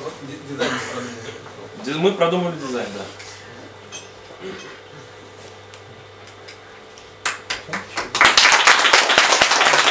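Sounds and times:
hand claps: 5.7s - 9.9s
audience applause: 7.3s - 9.9s.

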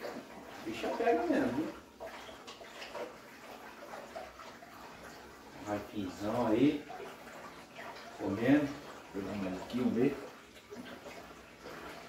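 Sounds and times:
aquarium water splashing and trickling: 0.0s - 12.0s.

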